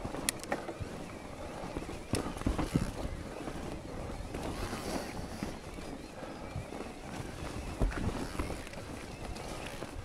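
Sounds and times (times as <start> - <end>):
bike knocks and rattles: 0.0 - 5.8
bike tyres on dirt and stones: 0.0 - 10.0
wind on microphone: 0.0 - 10.0.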